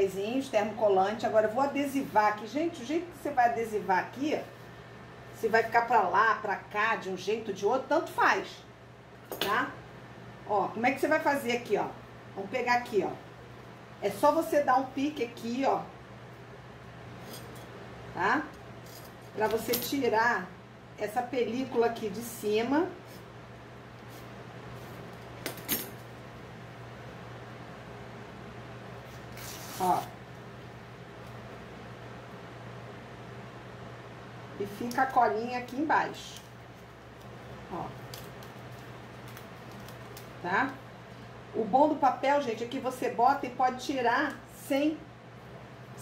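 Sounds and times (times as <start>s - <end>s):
steady low hum: 0.0s - 46.0s
paper backing crackling and crinkling: 36.7s - 40.4s.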